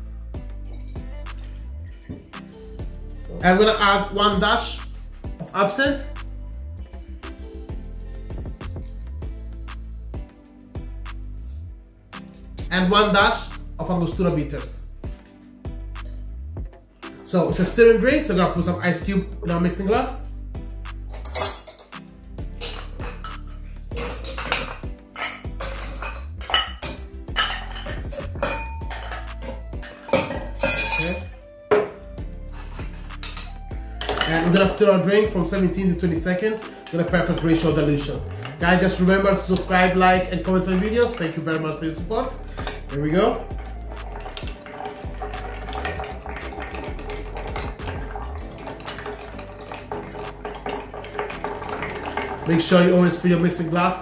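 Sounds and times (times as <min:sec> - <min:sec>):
background music: 0:00.0 - 0:54.0
ice cubes clinking into glass: 0:22.6 - 0:31.3, 0:44.2 - 0:52.7.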